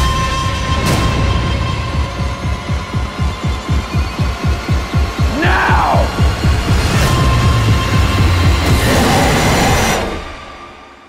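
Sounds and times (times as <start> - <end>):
dramatic trailer music: 0.0 - 11.0.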